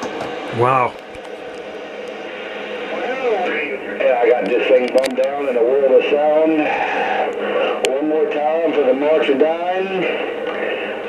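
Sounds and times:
radio static and hiss: 0:00.0 - 0:11.0.

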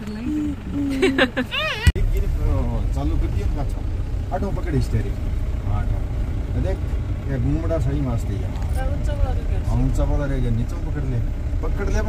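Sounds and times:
people talking: 0:00.0 - 0:03.8
vehicle engine and road noise: 0:00.0 - 0:12.0.

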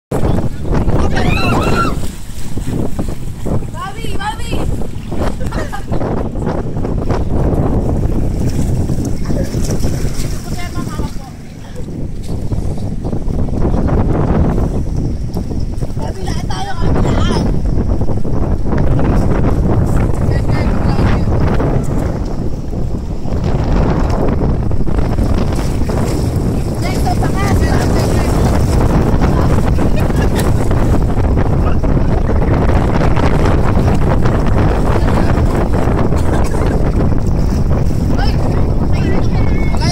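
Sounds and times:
wind buffeting microphone: 0:00.1 - 0:39.9
sea water lapping and splashing: 0:00.2 - 0:39.9
excited voices: 0:00.8 - 0:02.1.

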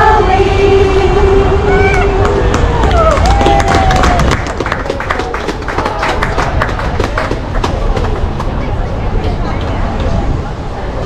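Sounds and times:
women singing a carol: 0:00.0 - 0:02.5
audience applause: 0:01.9 - 0:08.7.

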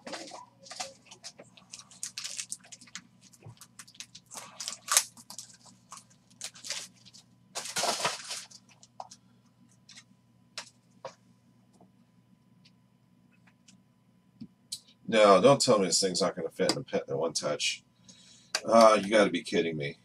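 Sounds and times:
plastic card sleeves crinkling: 0:00.0 - 0:09.1.

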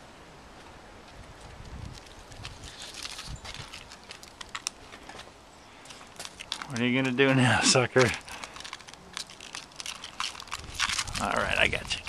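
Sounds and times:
paws crunching snow: 0:01.1 - 0:12.0.

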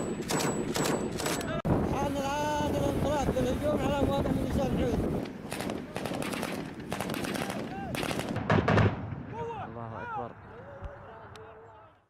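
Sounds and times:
small-arms gunfire bursts: 0:00.0 - 0:01.6, 0:05.4 - 0:09.0.

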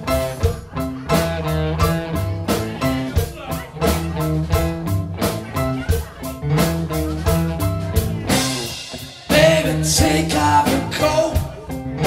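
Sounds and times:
rock band instrumental groove: 0:00.0 - 0:12.0.

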